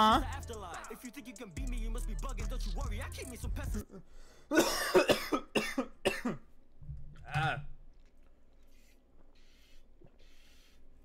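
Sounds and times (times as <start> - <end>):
rap music: 0.0 - 4.0
person coughing: 4.5 - 6.5.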